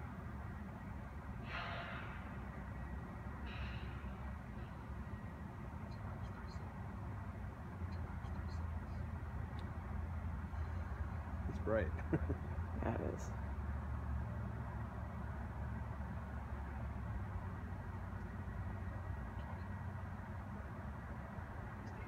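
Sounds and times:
low outdoor rumble: 0.0 - 22.0.

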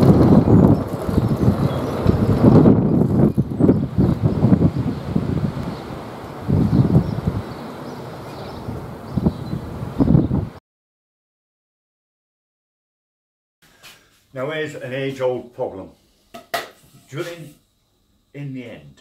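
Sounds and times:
wind buffeting microphone: 0.0 - 10.6.

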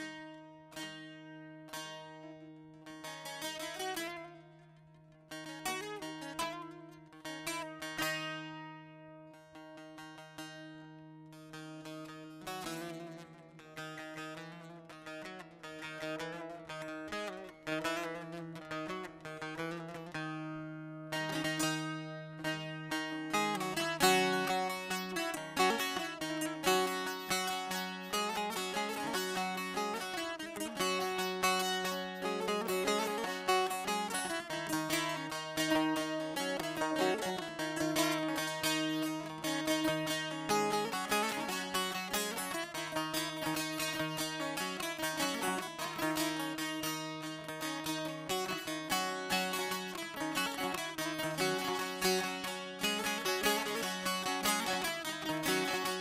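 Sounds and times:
saz plucked melody: 0.0 - 56.0.

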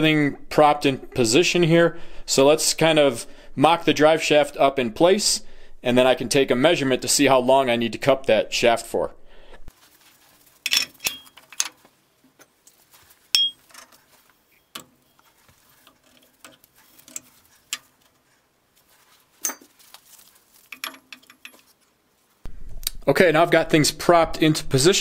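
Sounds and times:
metal parts clinking: 10.6 - 11.8, 13.3 - 18.0, 20.6 - 21.8.

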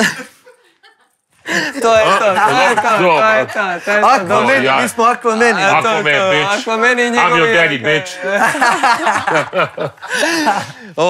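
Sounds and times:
men laughing: 0.0 - 11.0.

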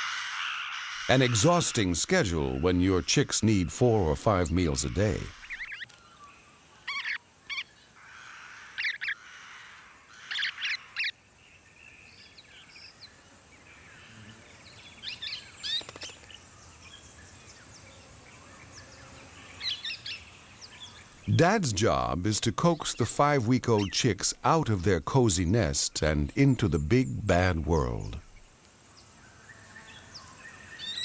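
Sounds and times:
parrots chirping: 1.1 - 5.8.

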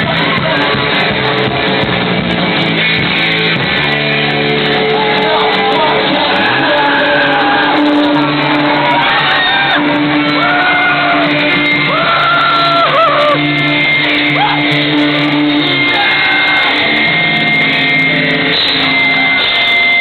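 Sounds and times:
loud guitar chords: 0.0 - 20.0
shouted vocals: 5.0 - 13.4, 15.8 - 17.0.

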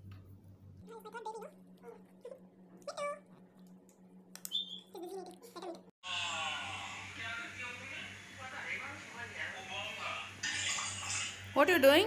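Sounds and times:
steady low hum: 0.0 - 11.6.

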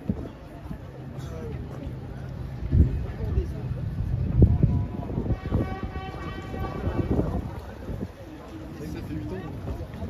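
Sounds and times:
wind rumble: 1.9 - 10.0
horn-like tone: 5.1 - 7.6.

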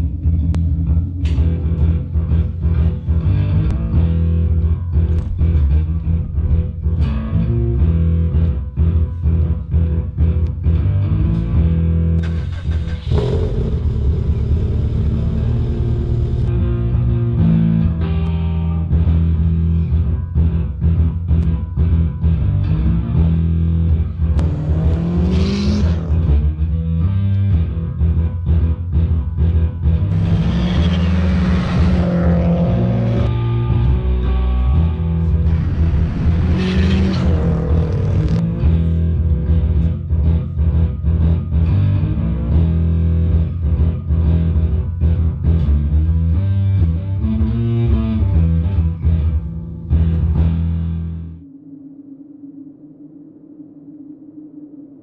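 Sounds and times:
electric bass riff: 0.0 - 51.4
car engine revving: 12.2 - 16.6, 24.3 - 26.5, 30.1 - 34.2, 34.9 - 38.8.

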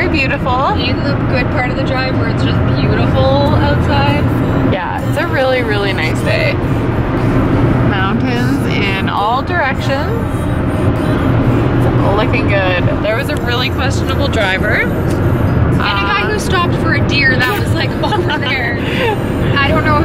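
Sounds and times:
car cabin road and engine drone: 0.0 - 20.0
song with singing voice: 3.8 - 16.6.

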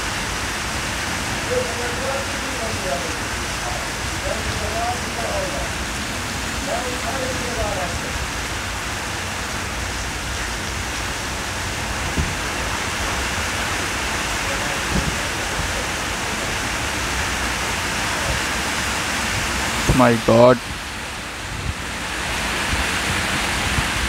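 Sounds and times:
heavy rain on a wet road: 0.0 - 24.0.

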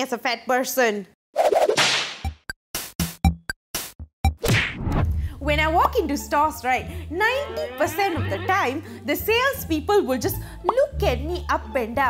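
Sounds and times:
electronic percussion hits: 2.1 - 4.7.

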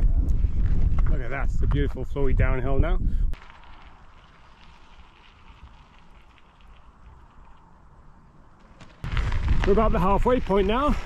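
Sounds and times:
bicycle tyres rolling on gravel: 3.4 - 11.0.

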